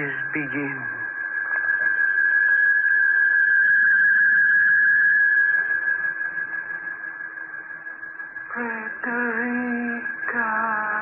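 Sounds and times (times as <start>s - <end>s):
eerie high tone: 0.0s - 11.0s.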